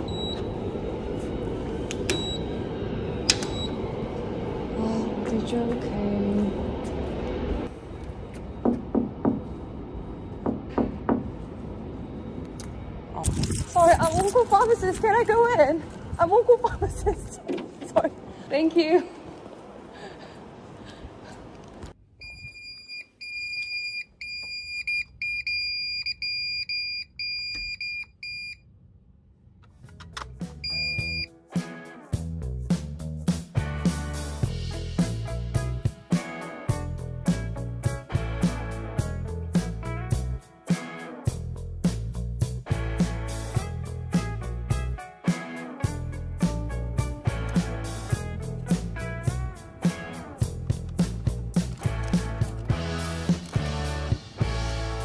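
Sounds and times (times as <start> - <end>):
security alarm beeping: 0.0 - 0.5, 2.1 - 2.6, 3.4 - 3.8, 22.2 - 28.6, 30.6 - 31.3
music: 29.8 - 55.0.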